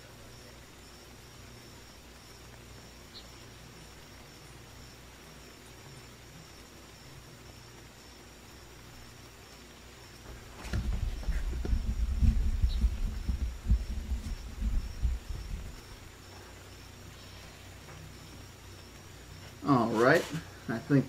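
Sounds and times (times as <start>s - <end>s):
faint steady hiss: 0.0s - 21.0s
microphone handling thumps: 10.2s - 16.0s.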